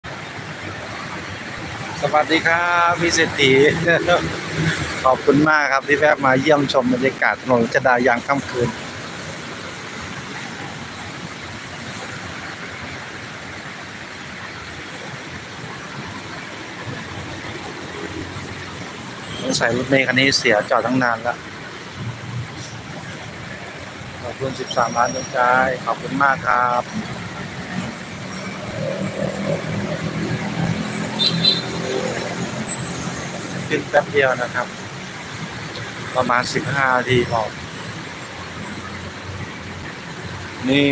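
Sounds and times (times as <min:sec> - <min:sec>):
idling car and bus engines: 0:00.0 - 0:40.9
road traffic noise: 0:00.0 - 0:40.9.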